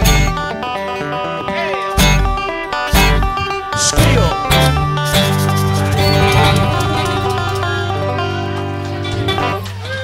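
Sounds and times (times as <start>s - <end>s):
bluegrass band chord ringing: 5.8s - 9.6s.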